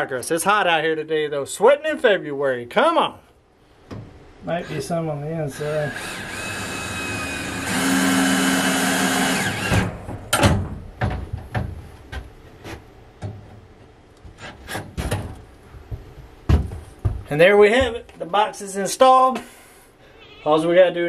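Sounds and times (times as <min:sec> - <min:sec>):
power drill driving screws: 0:05.5 - 0:09.9
knocks and clicks of handling tools: 0:09.7 - 0:13.6, 0:14.2 - 0:18.2.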